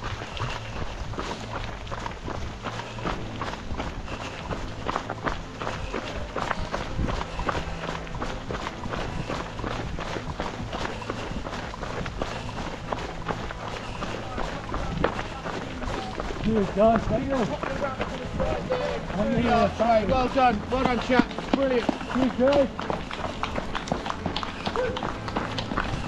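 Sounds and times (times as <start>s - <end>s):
footsteps of a runner on a trail: 0.0s - 26.0s.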